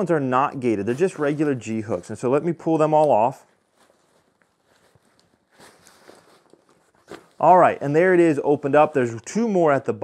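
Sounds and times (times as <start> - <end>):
nylon webbing rustling: 0.5 - 9.2.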